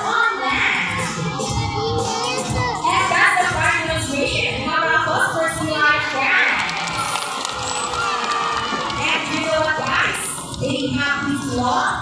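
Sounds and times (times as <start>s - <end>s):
crowd of overlapping voices: 0.0s - 12.0s.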